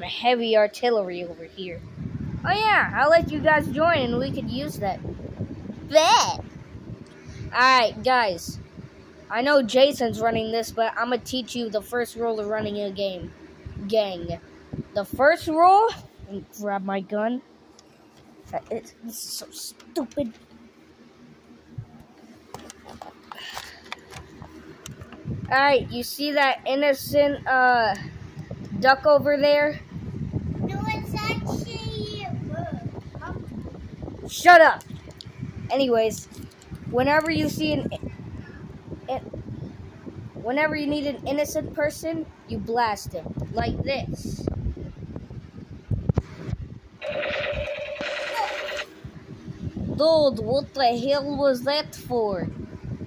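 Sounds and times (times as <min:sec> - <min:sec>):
toy gun electronic firing: 0:47.0 - 0:48.9.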